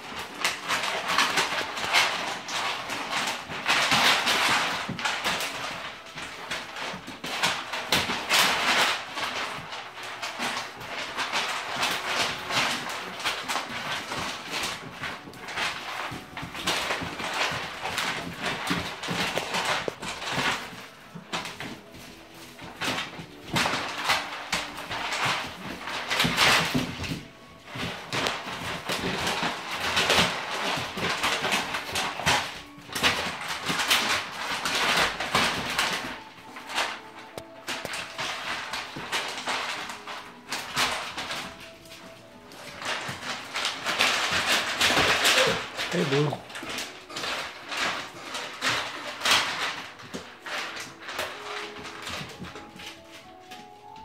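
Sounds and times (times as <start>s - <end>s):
paws scuffling and scratching: 0.0s - 54.0s.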